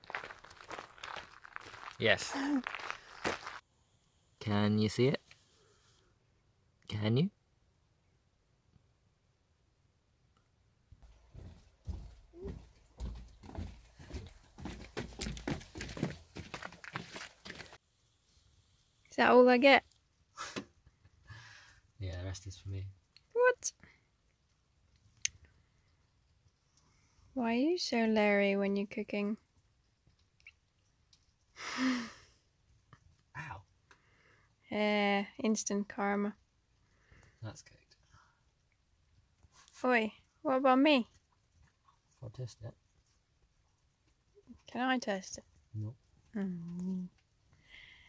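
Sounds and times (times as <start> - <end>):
footsteps crunching on gravel: 0.0 - 3.6, 11.0 - 17.8.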